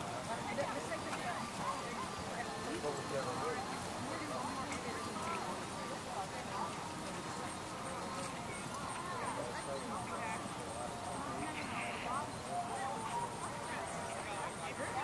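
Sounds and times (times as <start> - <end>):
distant indistinct voices: 0.0 - 15.0
outdoor background noise: 0.0 - 15.0.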